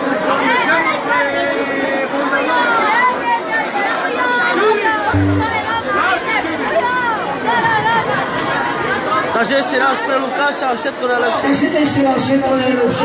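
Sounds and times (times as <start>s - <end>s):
crowd chatter: 0.0s - 13.0s
live band with electric guitars: 5.1s - 5.8s
short low note: 5.1s - 6.0s.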